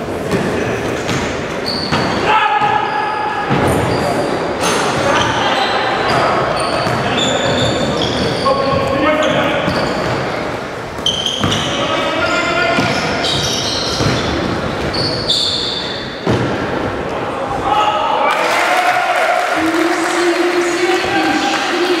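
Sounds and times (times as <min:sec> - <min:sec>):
sneakers squeaking: 0:00.2 - 0:16.9
basketball bouncing on wooden floor: 0:11.4 - 0:11.8, 0:12.8 - 0:15.0.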